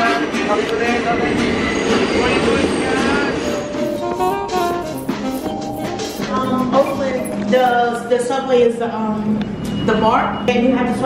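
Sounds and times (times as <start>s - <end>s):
subway train rumbling and rattling: 0.0s - 11.0s.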